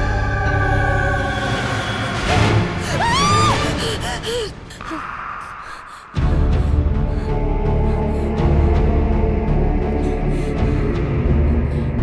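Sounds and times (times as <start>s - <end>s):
ominous background music: 0.0s - 12.0s
woman's frightened gasping cry: 2.8s - 6.3s.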